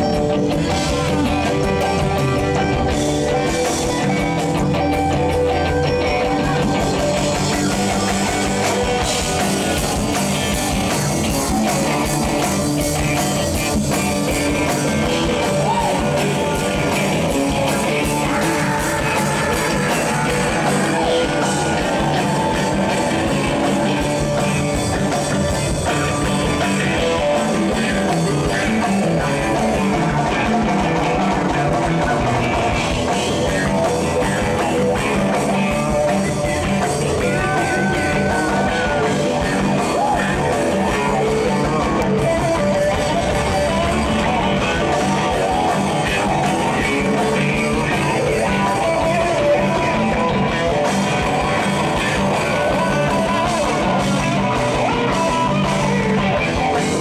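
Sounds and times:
bass line: 0.0 - 57.0
drum beats: 0.0 - 57.0
funk band playing: 0.0 - 57.0
guitar: 0.0 - 57.0.

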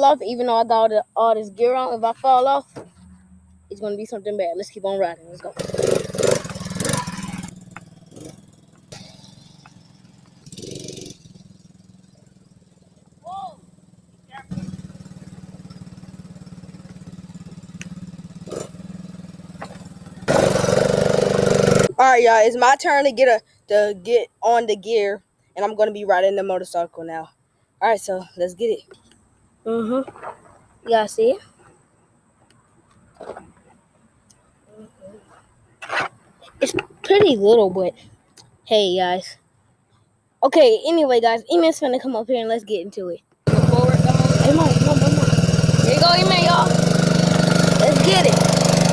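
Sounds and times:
atv engine running: 0.7 - 22.4, 43.5 - 48.9.

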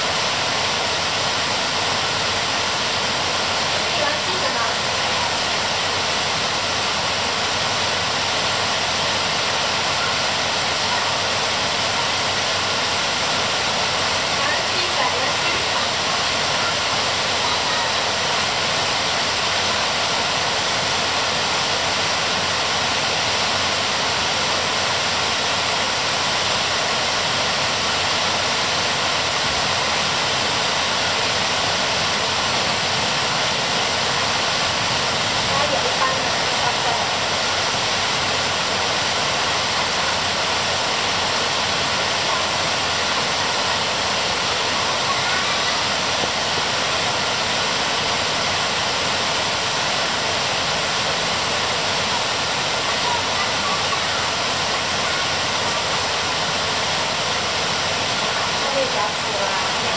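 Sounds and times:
heavy rain on leaves: 0.0 - 59.9.

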